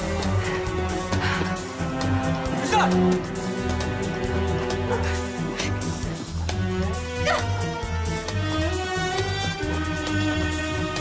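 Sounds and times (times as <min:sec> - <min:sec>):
tense background score: 0:00.0 - 0:11.0.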